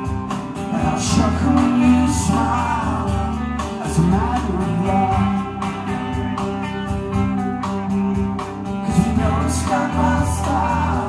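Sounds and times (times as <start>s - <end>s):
electric guitar: 0.0s - 11.0s
live rock band playing: 0.0s - 11.0s.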